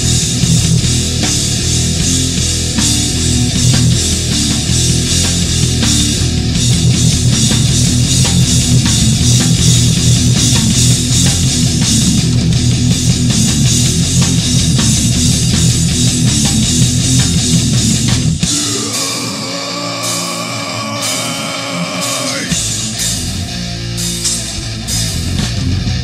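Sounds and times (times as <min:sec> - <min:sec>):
bass guitar: 0:00.0 - 0:26.0
distorted electric guitars: 0:00.0 - 0:26.0
drum kit: 0:00.0 - 0:26.0.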